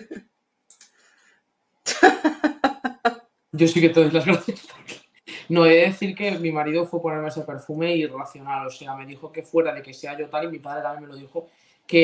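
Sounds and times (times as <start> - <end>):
woman coughing: 1.9 - 3.1.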